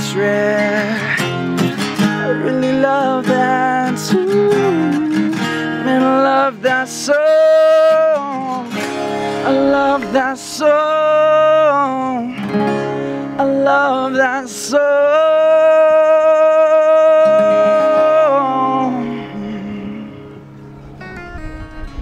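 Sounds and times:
strummed acoustic guitar: 0:00.0 - 0:22.0.

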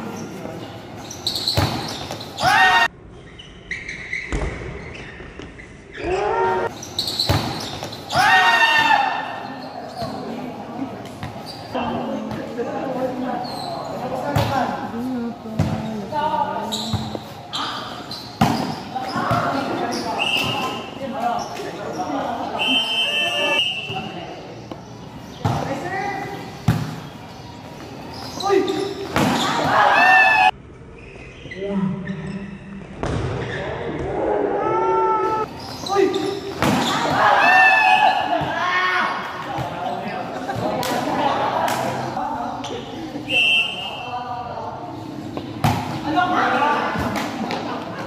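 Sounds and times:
people shouting: 0:02.4 - 0:02.9, 0:06.0 - 0:06.7, 0:08.1 - 0:09.4, 0:29.3 - 0:30.5, 0:36.7 - 0:39.2.

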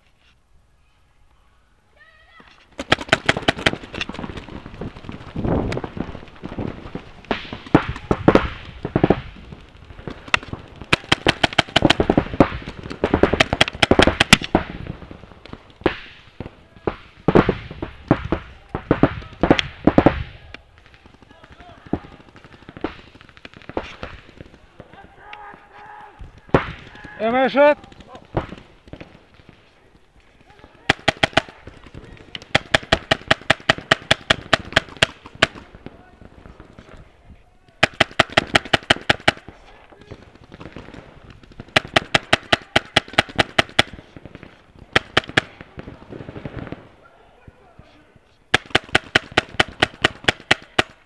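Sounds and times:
paintball markers firing: 0:02.8 - 0:06.0, 0:07.2 - 0:14.8, 0:16.9 - 0:29.6, 0:30.3 - 0:35.9, 0:37.7 - 0:45.6, 0:48.5 - 0:51.0.

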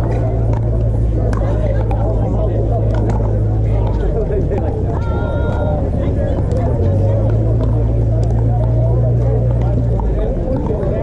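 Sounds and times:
distant players' voices: 0:00.0 - 0:11.0
paddles striking plastic balls: 0:00.0 - 0:11.0
steady low rumble: 0:00.0 - 0:11.0.

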